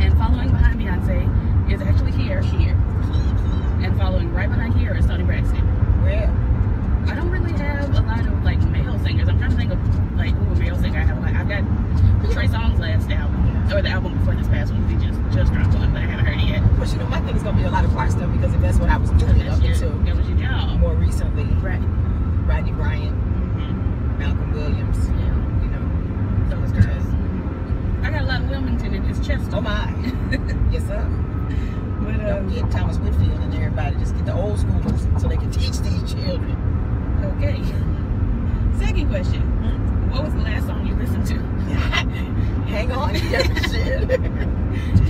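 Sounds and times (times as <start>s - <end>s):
women talking: 0.0s - 6.4s, 7.0s - 21.8s, 22.4s - 27.2s, 28.0s - 36.6s, 37.2s - 38.0s, 38.7s - 45.0s
car interior rumble: 0.0s - 45.0s.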